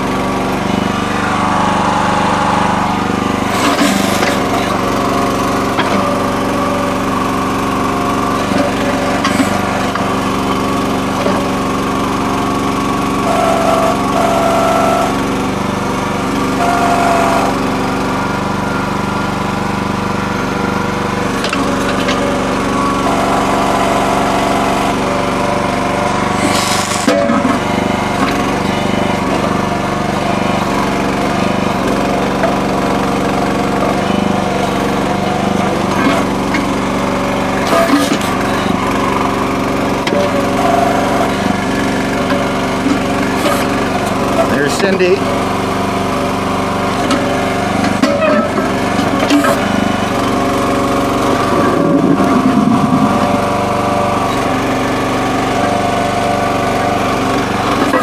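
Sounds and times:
hydraulic whine: 0:00.0 - 0:58.0
small gas engine running: 0:00.0 - 0:58.0.

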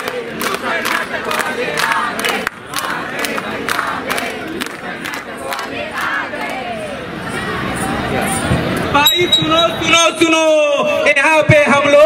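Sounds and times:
people clapping in rhythm: 0:00.0 - 0:06.8.

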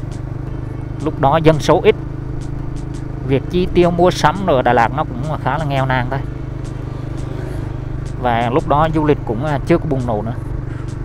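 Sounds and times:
motor scooter engine running: 0:00.0 - 0:11.0
road and wind noise: 0:00.0 - 0:11.0.

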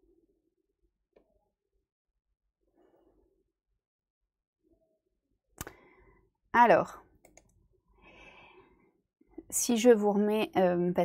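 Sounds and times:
soft breath: 0:07.9 - 0:09.0.

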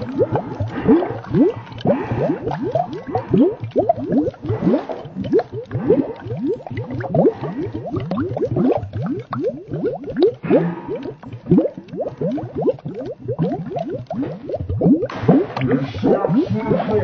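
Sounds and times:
bubbling water bloops: 0:00.0 - 0:17.0.

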